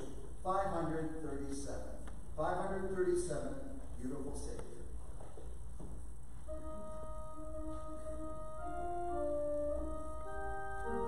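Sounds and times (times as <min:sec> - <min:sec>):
low room hum: 0:00.0 - 0:11.0
church organ chord: 0:06.5 - 0:11.0.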